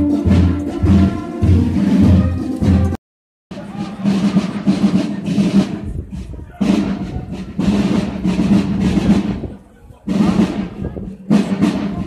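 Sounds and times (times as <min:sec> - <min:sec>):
marching band drums: 0:00.0 - 0:12.0.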